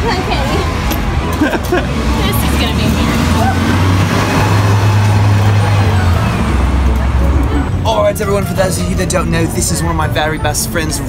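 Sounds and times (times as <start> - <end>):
heavy vehicle engine droning: 0.0 - 11.0.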